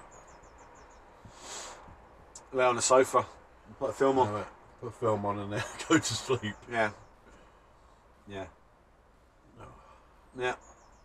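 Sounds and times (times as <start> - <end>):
small bird chirping: 0.0 - 3.9, 4.5 - 11.0
soft hiss: 0.2 - 11.0.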